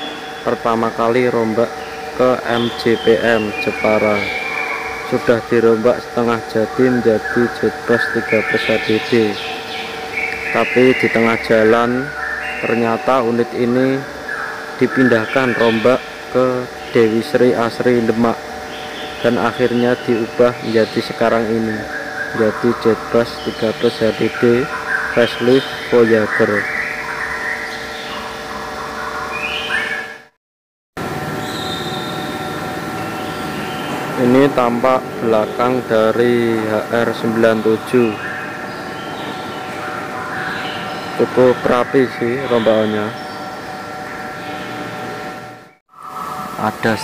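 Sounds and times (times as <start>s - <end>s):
steady tones: 0.0s - 29.4s, 31.0s - 47.0s
high-pitched whine: 0.0s - 30.3s, 31.0s - 47.0s
mechanical hum: 0.0s - 30.3s, 31.0s - 47.0s
man speaking: 0.5s - 4.4s, 5.1s - 9.4s, 10.5s - 14.1s, 14.8s - 18.4s, 19.2s - 26.6s, 34.2s - 38.2s, 41.2s - 43.2s, 46.6s - 47.0s.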